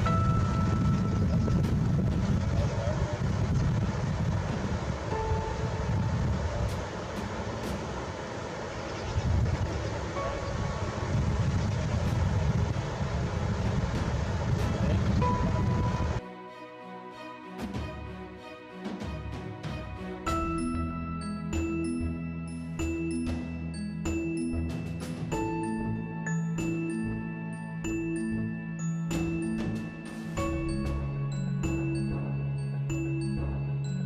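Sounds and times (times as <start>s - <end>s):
wind rumbling on microphone: 0.0s - 16.2s.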